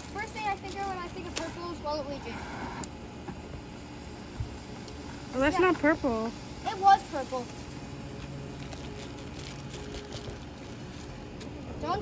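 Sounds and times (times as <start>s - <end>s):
smoke bomb hiss and click: 2.3s - 10.8s.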